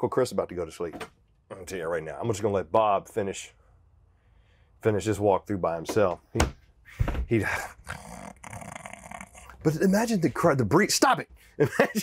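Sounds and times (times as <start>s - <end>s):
raspy mock snore: 7.6s - 9.6s
man chuckling: 11.6s - 12.0s.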